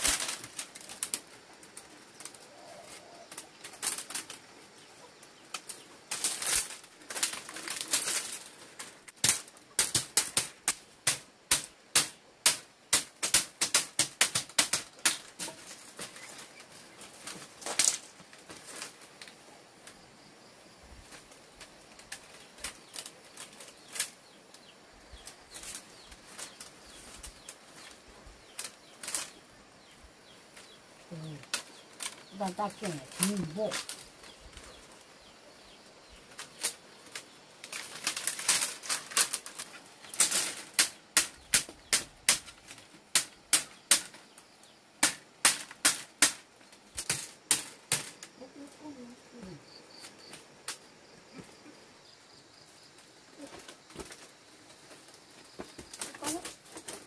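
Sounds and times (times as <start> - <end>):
bamboo strips clattering: 0.0 - 20.1, 21.0 - 57.0.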